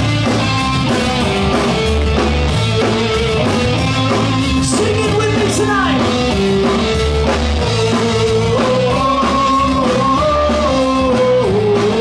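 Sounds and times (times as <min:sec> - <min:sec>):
rock band playing: 0:00.0 - 0:12.0
steady drum beat: 0:00.0 - 0:12.0.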